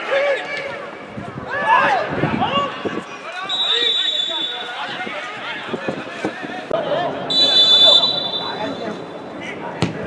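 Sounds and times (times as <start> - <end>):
players shouting: 0.0 - 10.0
referee's whistle blast: 3.5 - 4.8, 7.3 - 9.0.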